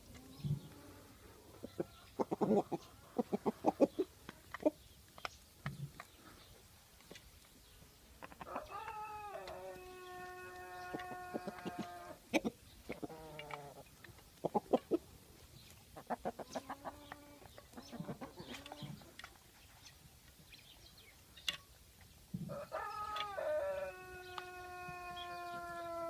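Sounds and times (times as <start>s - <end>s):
chickens calling: 0.0s - 7.2s, 7.8s - 26.0s.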